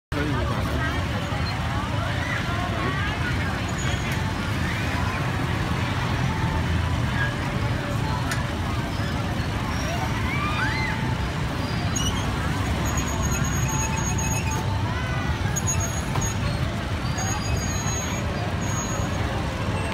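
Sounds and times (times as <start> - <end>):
crowd chatter: 0.1 - 19.9
motorbike and car traffic rumble: 0.1 - 19.9.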